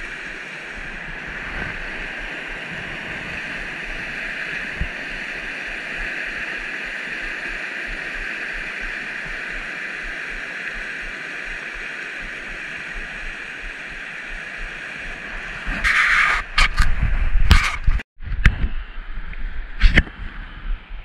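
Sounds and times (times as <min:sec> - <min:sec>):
water rushing over rocks: 0:00.0 - 0:16.6.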